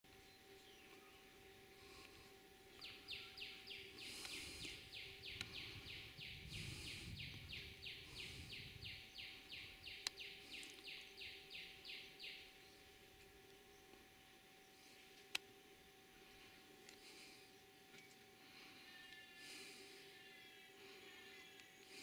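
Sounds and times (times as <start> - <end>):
bird calling with rasping notes: 0.2 - 13.0, 17.0 - 22.0.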